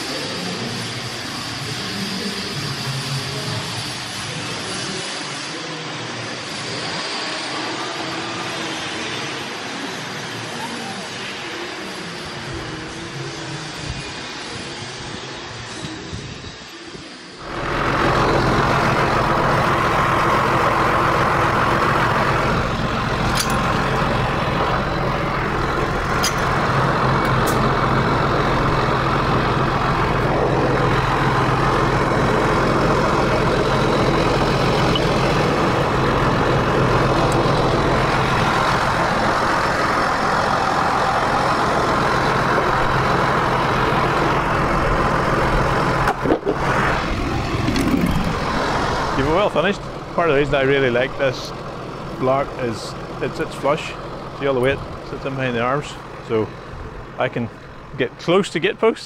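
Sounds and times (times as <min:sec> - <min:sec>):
tractor diesel engine running: 0:17.4 - 0:59.0.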